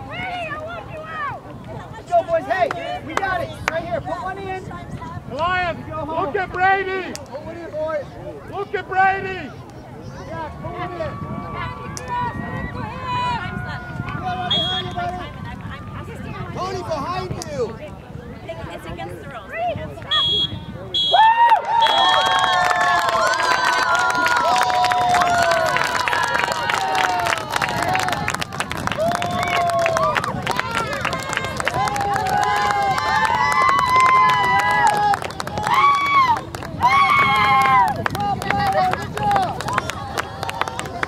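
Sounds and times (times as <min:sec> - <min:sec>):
people clapping: 0:02.5 - 0:03.8, 0:21.2 - 0:41.0
spectators cheering and shouting: 0:05.5 - 0:17.4, 0:20.7 - 0:41.0.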